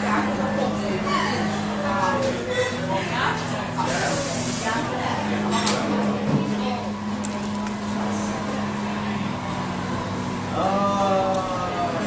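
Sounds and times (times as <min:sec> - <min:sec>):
cafe chatter: 0:00.0 - 0:12.0
burst of hiss: 0:03.9 - 0:04.7.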